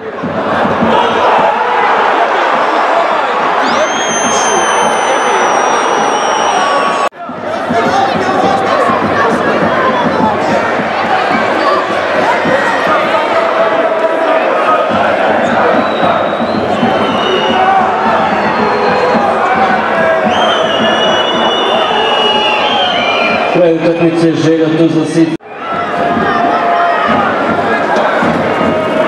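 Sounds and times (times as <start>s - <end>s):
crowd shouting and chanting: 0.0s - 29.0s
high held whistles: 3.6s - 7.1s, 15.7s - 19.2s, 20.2s - 23.6s.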